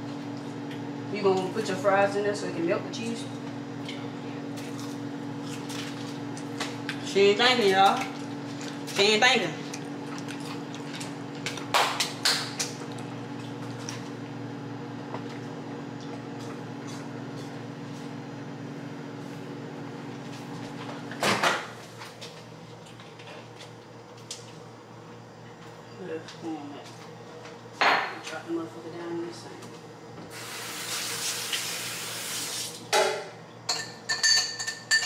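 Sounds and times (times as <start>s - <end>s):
kitchen appliance humming: 0.0s - 35.0s
appliance clunk: 21.1s - 21.8s.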